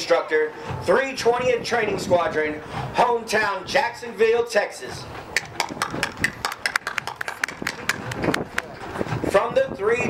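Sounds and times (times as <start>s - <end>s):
crowd voices: 4.9s - 9.6s
spectators clapping: 5.4s - 8.8s.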